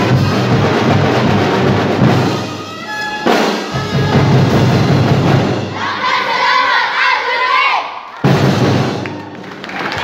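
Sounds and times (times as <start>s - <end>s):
festival drumming: 0.0s - 6.7s, 8.2s - 9.5s
children shouting and cheering: 5.7s - 8.4s, 9.0s - 10.0s.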